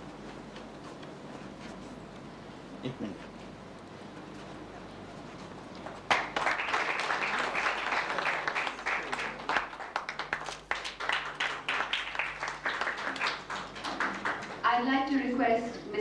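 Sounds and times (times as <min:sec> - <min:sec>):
audience applause: 0:06.0 - 0:14.6.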